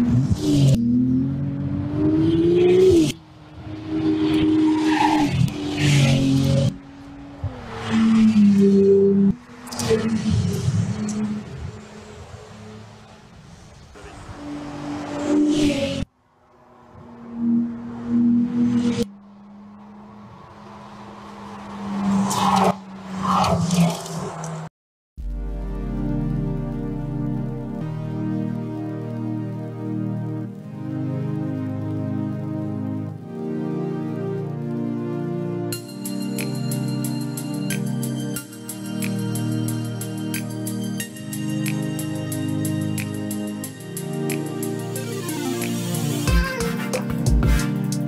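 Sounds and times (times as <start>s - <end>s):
sports car engine passing at speed: 0.0s - 24.7s.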